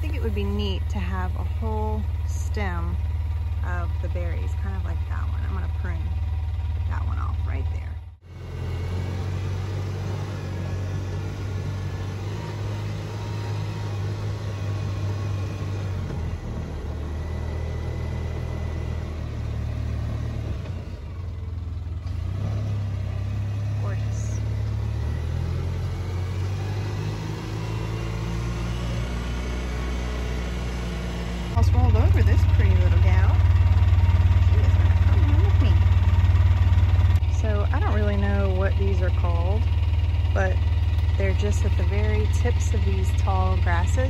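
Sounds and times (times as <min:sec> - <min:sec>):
small vehicle engine running: 0:00.0 - 0:44.0.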